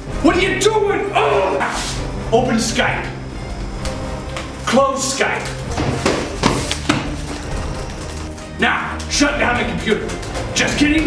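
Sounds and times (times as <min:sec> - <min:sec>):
sharp knocks: 0:05.7 - 0:07.2.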